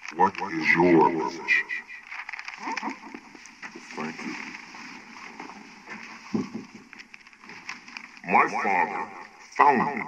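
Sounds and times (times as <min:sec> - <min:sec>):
faint scattered sounds: 0:00.0 - 0:10.0
person's voice: 0:00.1 - 0:01.9, 0:08.2 - 0:10.0.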